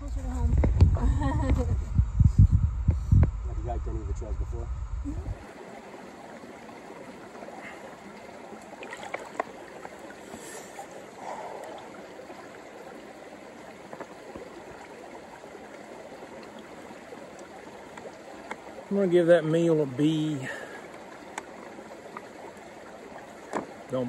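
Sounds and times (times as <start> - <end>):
creek flowing: 5.2 - 24.0.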